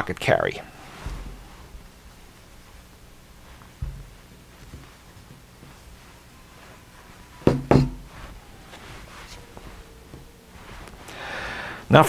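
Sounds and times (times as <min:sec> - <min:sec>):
objects knocking on a tabletop: 0:07.5 - 0:08.1.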